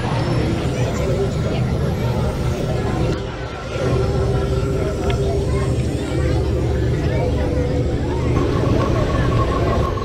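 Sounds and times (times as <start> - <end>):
people talking: 0.0 - 10.0
steady low rumble: 0.0 - 10.0.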